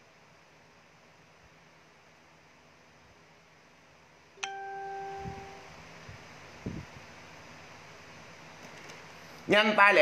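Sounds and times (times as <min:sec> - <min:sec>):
bright ringing ding: 0:04.4 - 0:05.7.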